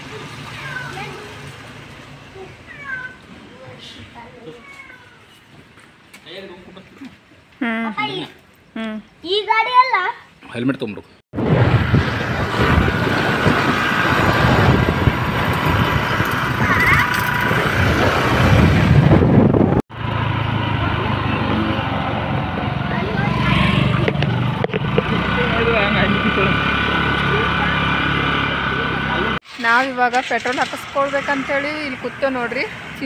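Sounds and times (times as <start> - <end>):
motor scooter engine: 0.0 - 3.1, 11.5 - 33.0
wind on microphone: 11.4 - 19.8.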